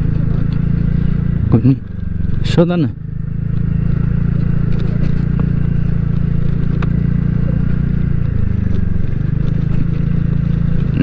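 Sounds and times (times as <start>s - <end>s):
scooter engine running: 0.0s - 11.0s.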